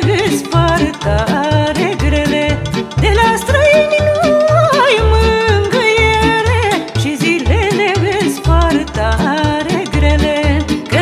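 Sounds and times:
folk band music: 0.0 - 11.0.

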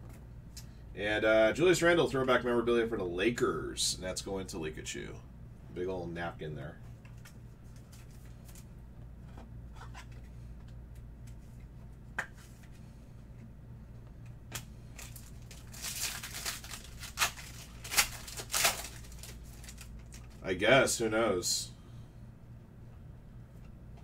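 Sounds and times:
low steady hum: 0.0 - 24.0
plastic wrapper tearing and crinkling: 14.5 - 20.4
trading cards shuffling: 14.5 - 20.4.

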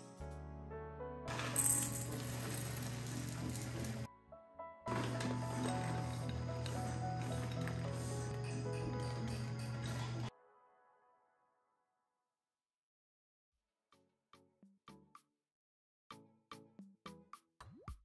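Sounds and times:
background music: 0.0 - 11.8.

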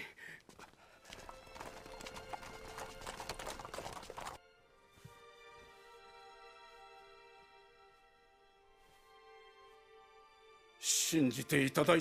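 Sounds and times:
horse hooves clopping on hard ground: 0.5 - 4.4
soft background music: 1.1 - 12.0.

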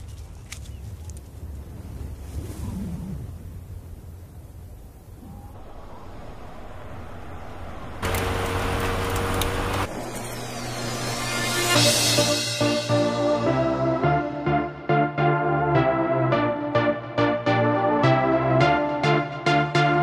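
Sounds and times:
car engine low rumble: 4.8 - 11.2
engine burst and tyres on dirt: 5.5 - 11.0.

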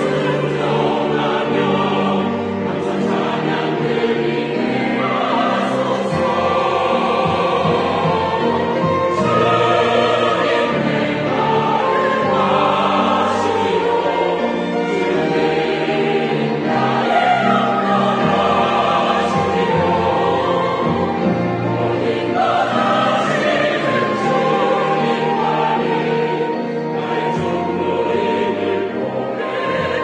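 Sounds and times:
choir singing: 0.0 - 30.0
instrumental accompaniment: 0.0 - 30.0.

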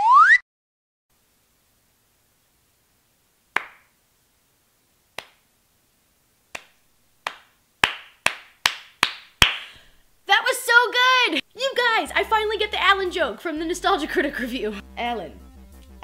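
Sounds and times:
hand claps: 3.6 - 3.9, 5.2 - 5.4, 6.5 - 9.8
woman speaking: 10.3 - 15.4.

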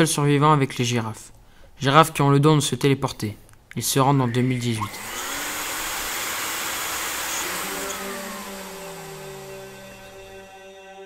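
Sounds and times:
tone gliding downward: 4.2 - 10.6.

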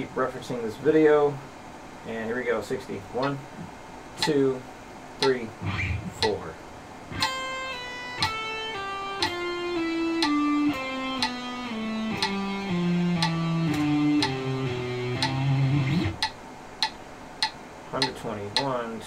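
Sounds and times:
metronome clicking: 4.2 - 4.4, 5.2 - 5.5, 6.2 - 6.4, 7.2 - 18.8
electric guitar legato run: 5.5 - 6.4, 7.1 - 16.3.

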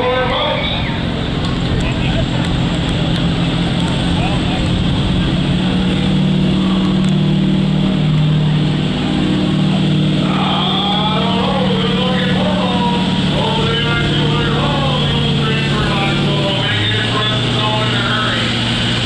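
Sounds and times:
announcer over loudspeaker: 0.0 - 1.1, 10.1 - 18.6
truck engine under full load: 0.0 - 19.0.

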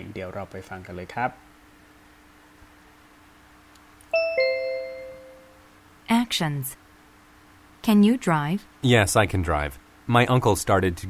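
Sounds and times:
two-note ding-dong chime: 4.2 - 5.6.

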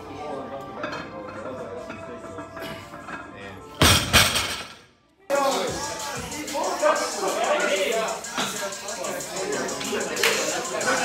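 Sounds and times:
background music: 0.0 - 11.0
barbell crashing on platform: 3.8 - 4.8.

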